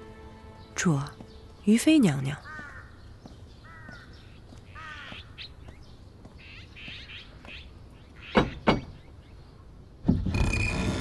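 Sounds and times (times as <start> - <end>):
faint outdoor background: 0.0 - 11.0
crow cawing: 2.4 - 5.5.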